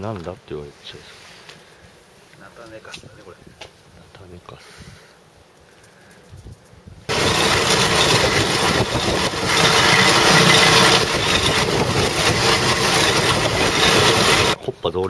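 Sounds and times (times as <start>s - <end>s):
spreader machine grinding noise: 7.1s - 14.6s.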